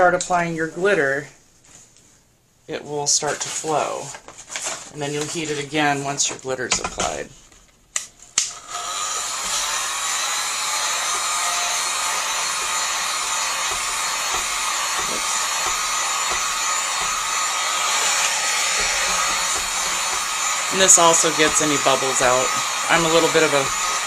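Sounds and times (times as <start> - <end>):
heat gun blowing air: 8.5 - 24.0.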